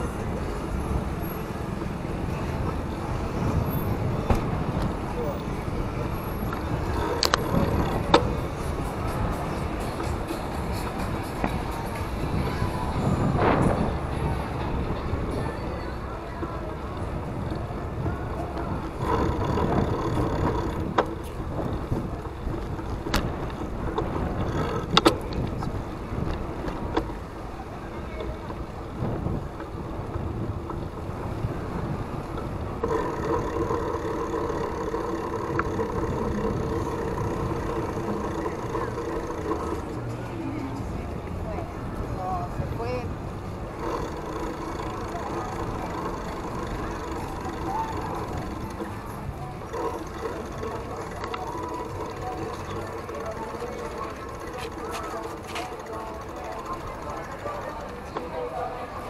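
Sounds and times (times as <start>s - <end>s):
wind rumble on camera microphone: 0.0s - 53.6s
passing street voices: 0.0s - 59.0s
traffic: 0.0s - 59.0s
sharp clicks or rattles: 43.8s - 58.4s.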